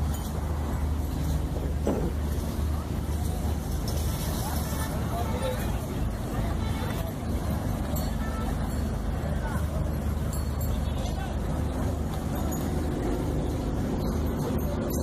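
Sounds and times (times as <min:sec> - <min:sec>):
faint indistinct voices: 0:00.0 - 0:15.0.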